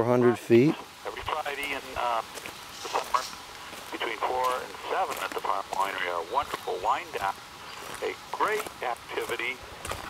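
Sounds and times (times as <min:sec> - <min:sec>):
man's voice over phone speaker: 0:00.0 - 0:09.7.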